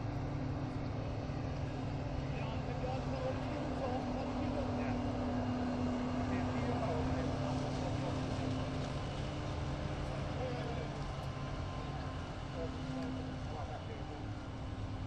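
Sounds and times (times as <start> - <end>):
forage harvester engine drone: 0.0 - 15.0
tractor pulling trailer: 0.0 - 15.0.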